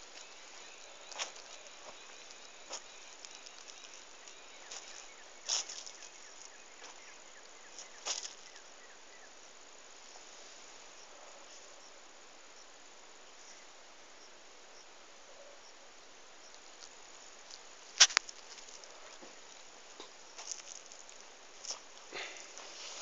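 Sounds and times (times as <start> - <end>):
leaves rustling against microphone: 0.0 - 14.7, 15.4 - 23.0
insects chirring: 0.0 - 15.0, 15.6 - 23.0.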